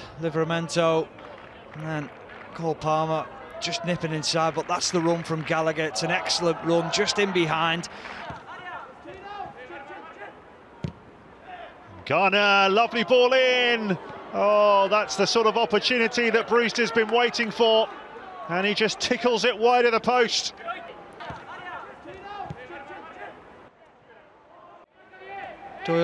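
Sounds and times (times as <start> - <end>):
players shouting faintly: 0.5 - 26.0
football kick: 10.8 - 11.0, 21.2 - 21.5.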